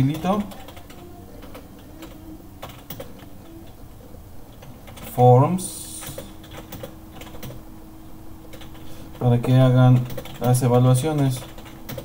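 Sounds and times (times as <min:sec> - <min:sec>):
computer keyboard typing: 0:00.0 - 0:03.3, 0:04.5 - 0:05.2, 0:05.9 - 0:07.6, 0:08.5 - 0:12.0.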